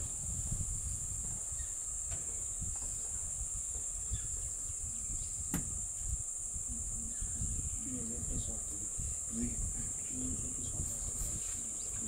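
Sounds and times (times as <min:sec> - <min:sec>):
insects chorus: 0:00.0 - 0:12.0.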